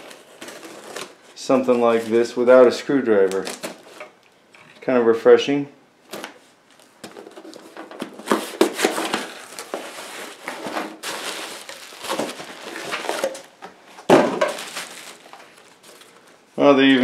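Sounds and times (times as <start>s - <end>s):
bubble wrap crinkling: 0.0s - 2.4s, 6.1s - 16.4s
cardboard flaps rustling: 6.1s - 16.3s.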